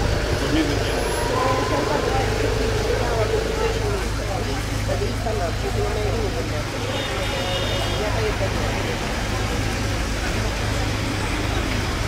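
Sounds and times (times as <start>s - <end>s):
low rumble of traffic: 0.0s - 12.0s
people talking: 0.0s - 12.0s.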